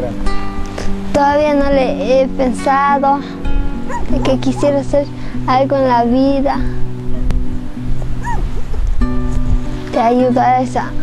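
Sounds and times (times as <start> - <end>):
background music with held notes: 0.0 - 11.0
dog whimper: 3.8 - 4.6, 8.0 - 8.9.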